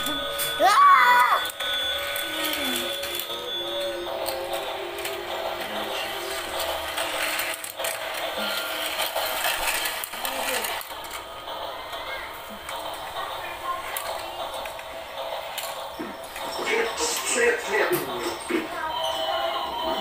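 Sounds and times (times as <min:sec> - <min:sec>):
toy track mechanical whirr: 0:00.0 - 0:20.0.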